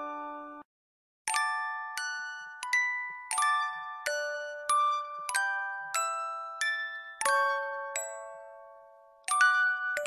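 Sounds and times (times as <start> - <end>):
bell-like lullaby music: 0.0 - 0.7, 1.3 - 10.0.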